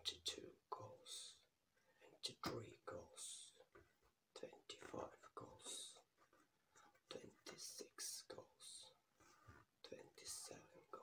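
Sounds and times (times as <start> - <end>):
man whispering: 0.0 - 11.0.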